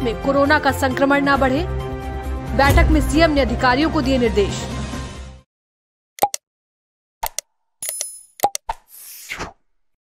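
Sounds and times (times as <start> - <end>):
short clicks and pops: 6.2 - 6.4, 7.2 - 8.8.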